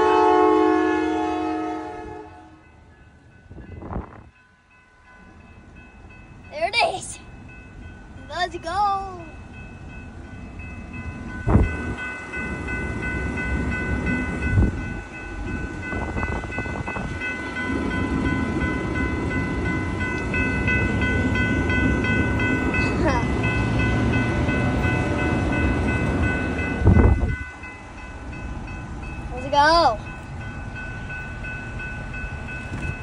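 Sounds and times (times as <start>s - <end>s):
crossing warning bell ringing: 0.0s - 33.0s
train wheels rumbling on rails: 0.0s - 33.0s.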